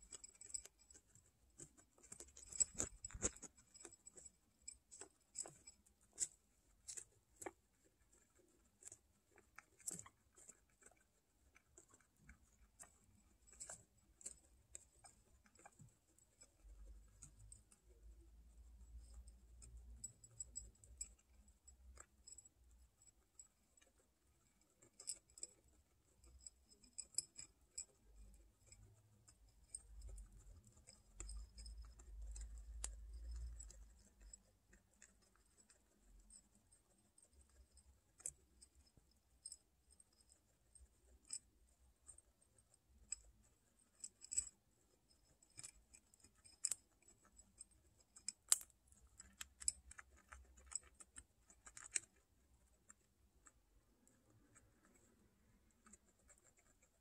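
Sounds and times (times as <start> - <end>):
guinea pigs crunching pellets: 0.0 - 57.0.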